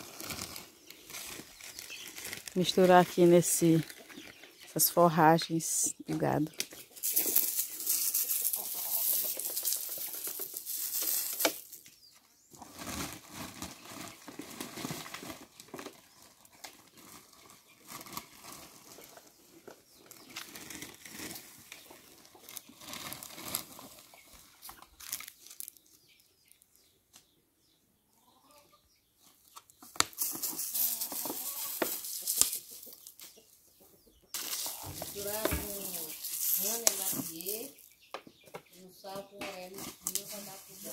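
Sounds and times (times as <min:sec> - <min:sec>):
dry forage rustling: 0:00.0 - 0:05.4, 0:06.1 - 0:26.6, 0:29.9 - 0:33.4, 0:34.3 - 0:37.9, 0:39.6 - 0:40.9.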